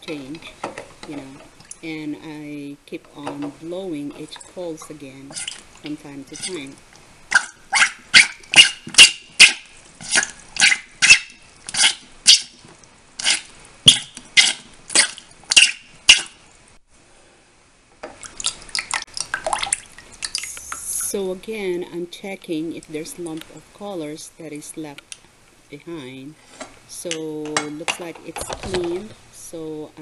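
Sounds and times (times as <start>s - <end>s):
water splashing: 3.3s - 16.4s, 18.1s - 21.2s.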